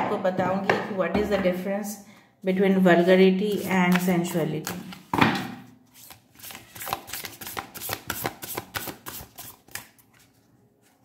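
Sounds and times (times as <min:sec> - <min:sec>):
cards being shuffled: 0:03.6 - 0:05.1, 0:05.9 - 0:11.0.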